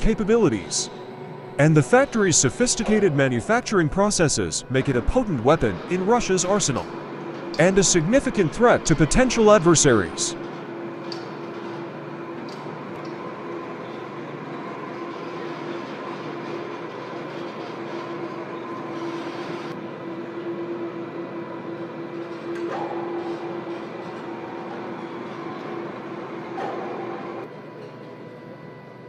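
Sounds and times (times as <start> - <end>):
overhead crane humming and whining: 0.0 - 29.0.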